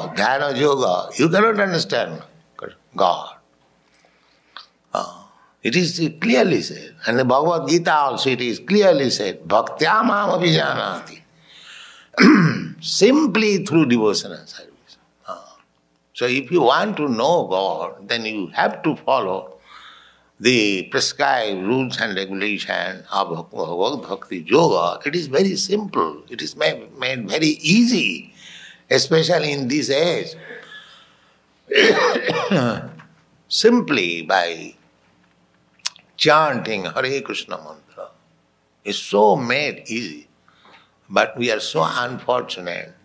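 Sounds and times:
man speaking: 0:00.0 - 0:03.4, 0:05.0 - 0:11.2, 0:12.2 - 0:15.5, 0:16.2 - 0:19.6, 0:20.4 - 0:30.9, 0:31.7 - 0:34.8, 0:35.8 - 0:38.2, 0:38.9 - 0:40.3, 0:41.1 - 0:43.0
man clearing throat: 0:12.2 - 0:12.7, 0:31.7 - 0:32.9.

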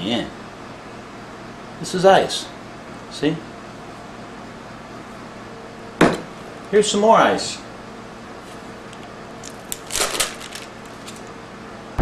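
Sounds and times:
small hard objects clattering: 0:09.4 - 0:11.3.

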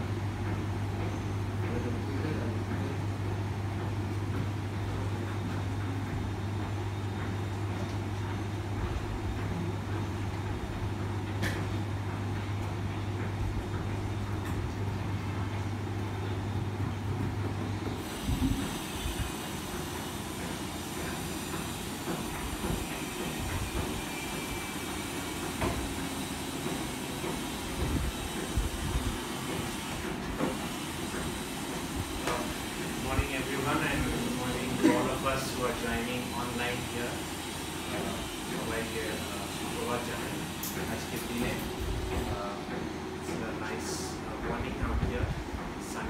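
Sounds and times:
low electrical hum: 0:00.0 - 0:46.0.

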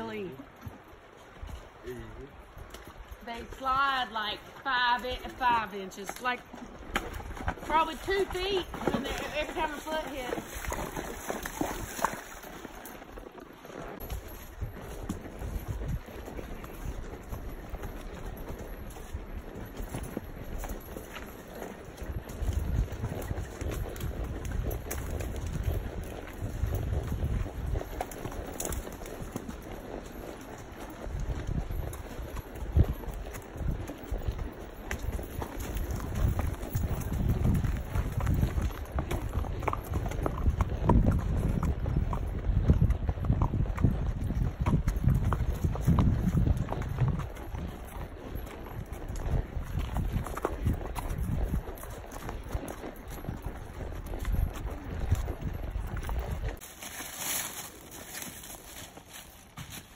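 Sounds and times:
hooves clip-clopping on dirt: 0:00.0 - 0:59.9.

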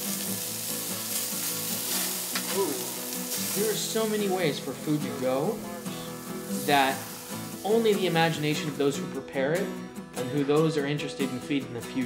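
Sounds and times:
chicken sizzling on a grill: 0:00.0 - 0:09.2.

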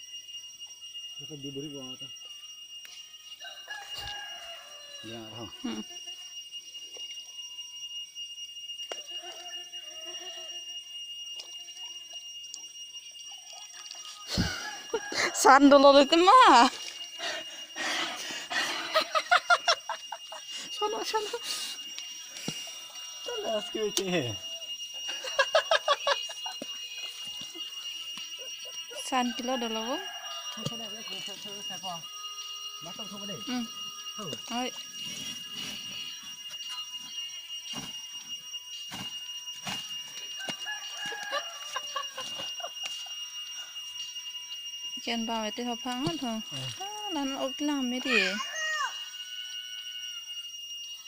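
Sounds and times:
high-pitched whine: 0:00.0 - 0:51.0
steady high-pitched tone: 0:00.0 - 0:51.0
rooster crowing: 0:03.2 - 0:05.8, 0:08.9 - 0:10.9, 0:13.2 - 0:20.5, 0:22.2 - 0:26.7, 0:27.4 - 0:34.6, 0:39.8 - 0:43.8, 0:47.8 - 0:50.5
voices: 0:03.4 - 0:06.0, 0:11.4 - 0:43.8, 0:44.9 - 0:49.2.

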